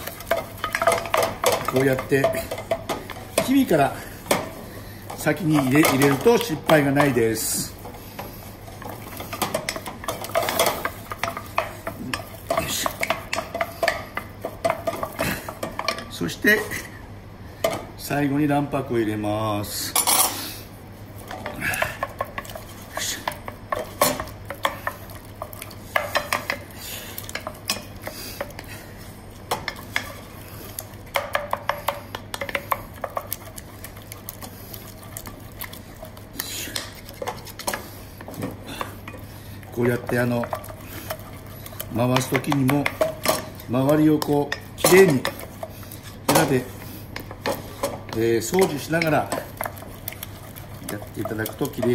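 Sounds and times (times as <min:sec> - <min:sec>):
spatula scraping and slapping pan: 0:00.0 - 0:16.9, 0:21.2 - 0:51.9.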